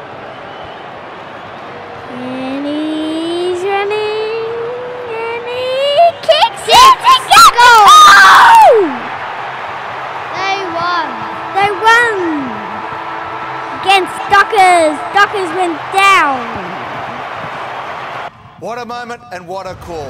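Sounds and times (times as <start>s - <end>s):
stadium crowd noise: 0.0s - 20.0s
boys yelling excitedly: 6.0s - 9.1s, 10.3s - 12.6s.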